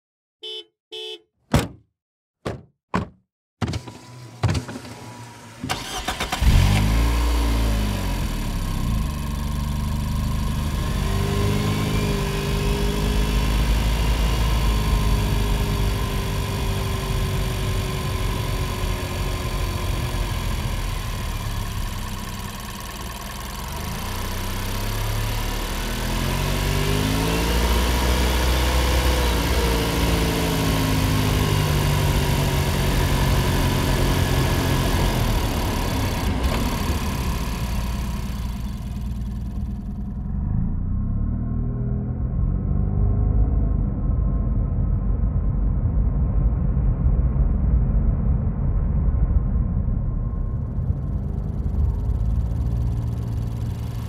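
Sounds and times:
car engine starting and idling: 3.6s - 41.4s, 50.3s - 54.0s
car engine revving: 3.8s - 43.4s, 50.7s - 54.0s.

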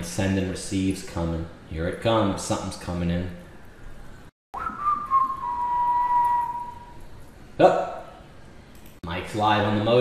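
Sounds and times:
man whistling a long note: 4.6s - 7.0s.

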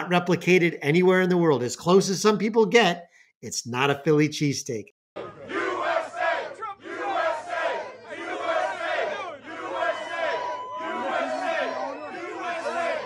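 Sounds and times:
crowd cheering and shouting: 5.2s - 13.0s.

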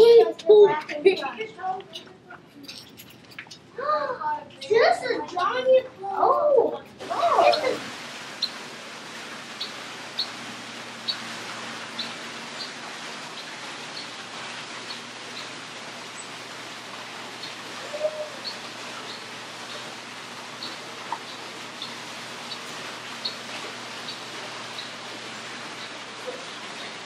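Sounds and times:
bird chirping: 7.4s - 7.8s, 17.4s - 19.3s, 20.6s - 23.4s.

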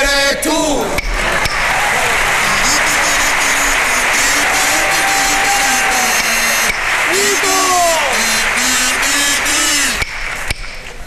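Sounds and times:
audience applauding: 1.1s - 10.9s.

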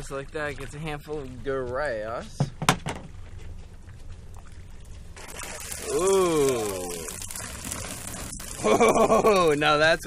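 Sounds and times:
water pouring and dripping: 0.0s - 2.5s, 3.1s - 10.0s
person exclaiming: 5.8s - 7.2s.

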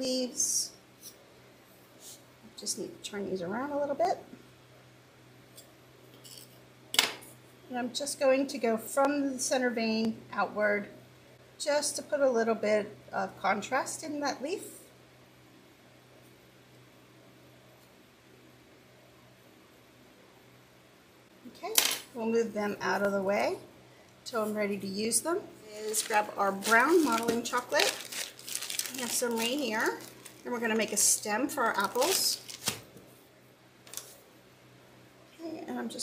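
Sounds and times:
faint steady hum: 0.0s - 36.0s
person speaking: 24.3s - 32.7s.

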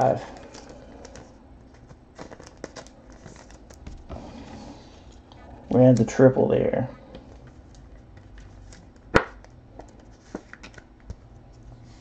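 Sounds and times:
plastic card sleeves clicking and rustling: 0.3s - 4.0s, 7.6s - 11.6s.

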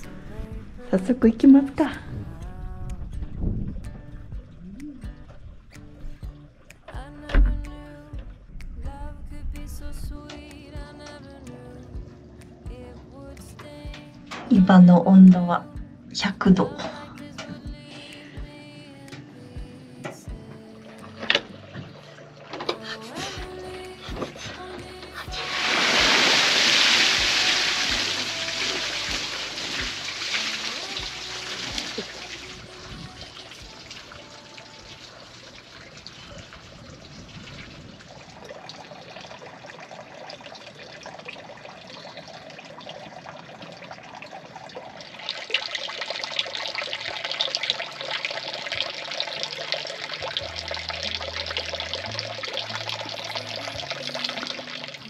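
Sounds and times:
background music: 0.0s - 36.3s, 45.5s - 55.0s
water sloshing and pouring: 20.8s - 23.1s, 24.0s - 55.0s
trickle of running water: 23.6s - 55.0s.

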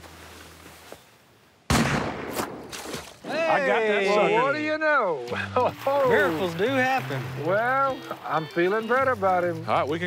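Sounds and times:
shotgun blast: 1.7s - 2.7s.

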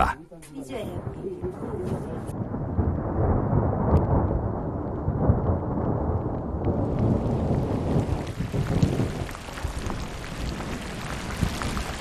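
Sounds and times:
thunder rumbling: 0.8s - 12.0s.

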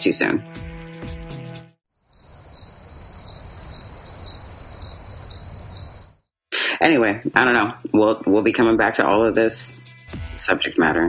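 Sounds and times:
crickets chirping: 2.0s - 6.3s.

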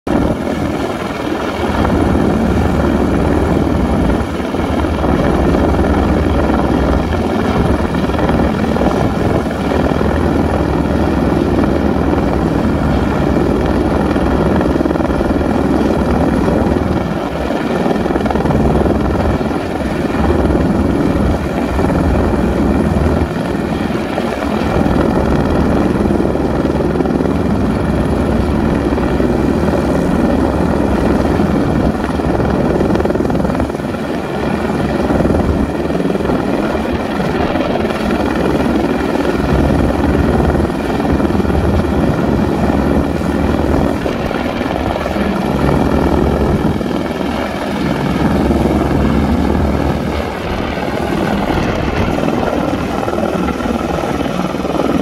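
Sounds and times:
helicopter hovering: 0.1s - 55.0s.

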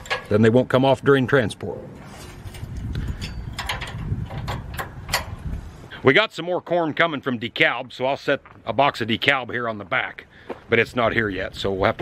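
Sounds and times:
metal clicks and clanks: 0.0s - 0.5s, 2.3s - 5.4s.

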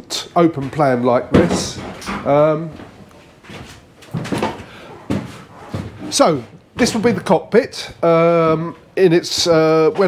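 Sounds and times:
footsteps on metal floor: 0.4s - 10.0s.

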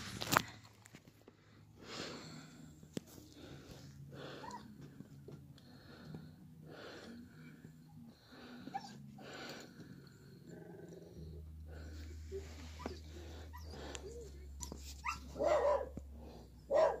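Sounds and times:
dog barking: 15.0s - 16.0s, 16.7s - 17.0s.

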